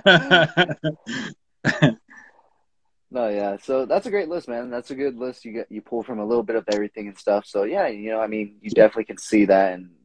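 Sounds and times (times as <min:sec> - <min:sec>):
man clearing his throat: 0:00.8 - 0:02.2.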